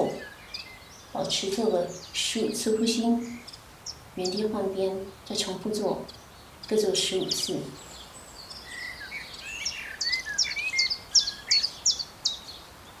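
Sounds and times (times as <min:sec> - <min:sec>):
birds chirping and singing: 0:00.0 - 0:13.0.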